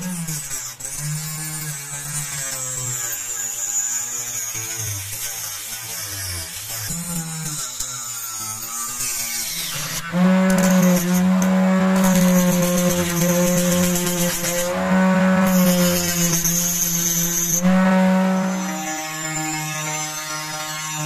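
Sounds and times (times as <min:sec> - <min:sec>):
rotary tool motor whine: 0:00.0 - 0:21.0
saw disc cutting plastic pipe: 0:00.0 - 0:21.0.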